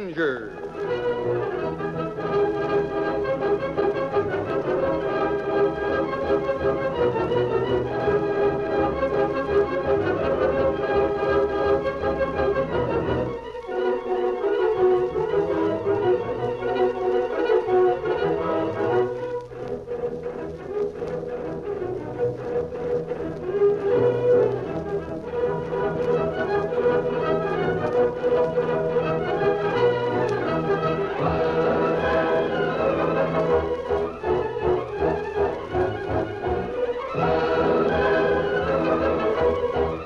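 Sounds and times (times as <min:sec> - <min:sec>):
orchestral strings and brass: 0:00.0 - 0:40.0.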